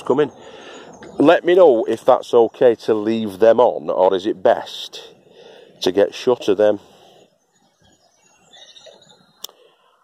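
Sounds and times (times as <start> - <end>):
distant birdsong chirps: 0.0 - 10.0.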